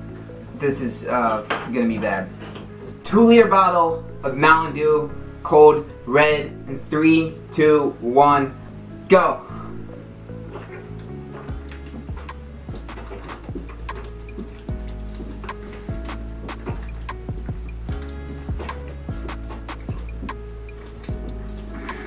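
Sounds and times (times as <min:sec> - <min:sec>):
steady drum beat: 0:11.5 - 0:22.0
sustained bass line: 0:11.5 - 0:22.0.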